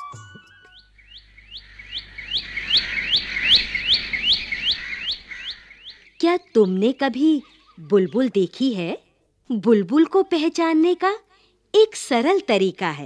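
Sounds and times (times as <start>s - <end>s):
bird chirping: 0.4s - 8.9s.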